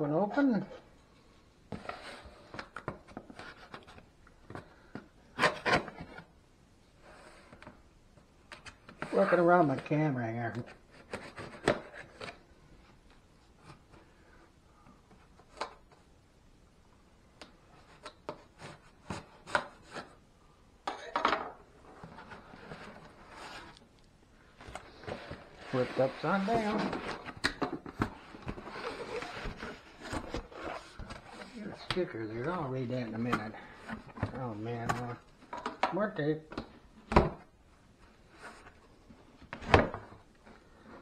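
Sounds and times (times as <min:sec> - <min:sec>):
cardboard scraping: 0:21.9 - 0:23.8, 0:24.6 - 0:31.9.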